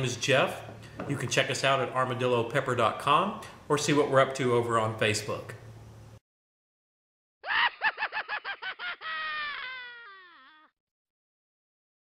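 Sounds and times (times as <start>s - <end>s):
cartoon yelp-like calls: 7.4s - 10.7s.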